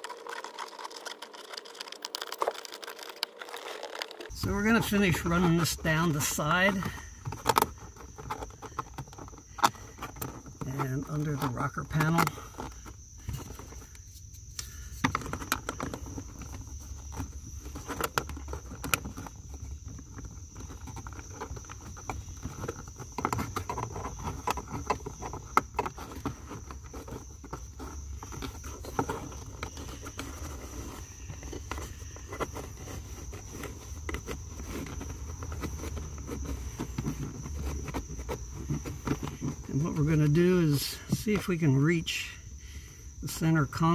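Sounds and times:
clicks and rustles of plastic trim: 0.0 - 40.4.

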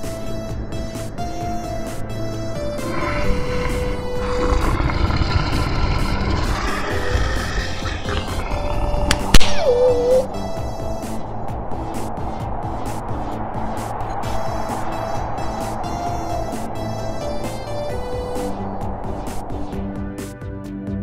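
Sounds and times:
soundtrack music: 0.0 - 21.0
long rough rumbling noise: 0.2 - 9.4
sharp crack: 7.8 - 9.8.

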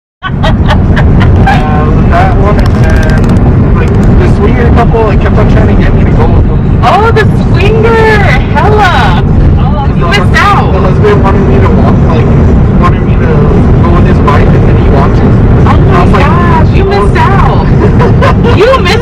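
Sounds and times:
car cabin road noise: 0.2 - 19.0
voices talking indistinctly: 0.3 - 19.0.

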